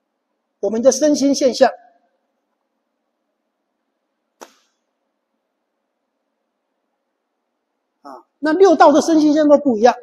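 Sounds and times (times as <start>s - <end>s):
short sharp tap: 4.4s - 4.8s.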